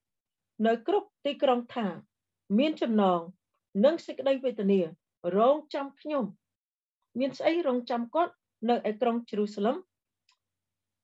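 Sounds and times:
woman reading aloud: 7.2s - 9.8s.

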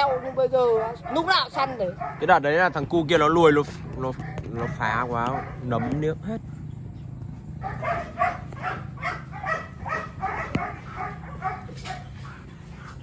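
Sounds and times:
dog yelping: 0.0s - 2.6s, 4.0s - 13.0s.

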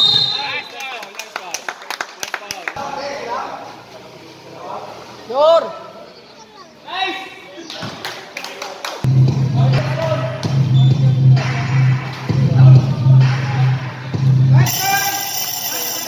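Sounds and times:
music with heavy bass: 9.1s - 14.7s.

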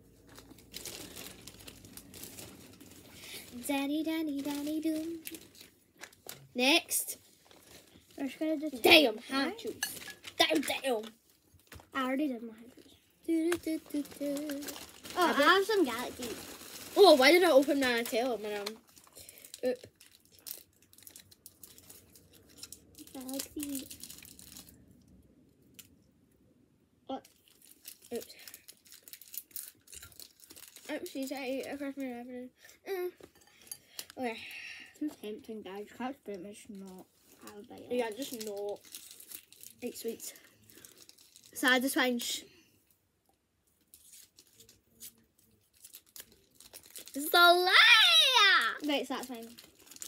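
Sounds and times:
sweet wrappers crinkling: 0.0s - 26.0s, 27.1s - 32.2s, 33.3s - 42.7s, 43.7s - 50.0s.

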